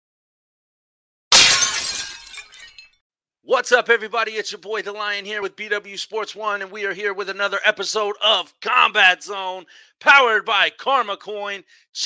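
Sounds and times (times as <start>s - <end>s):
glass crash: 1.3s - 3.0s
glass shards tinkling: 1.4s - 3.0s.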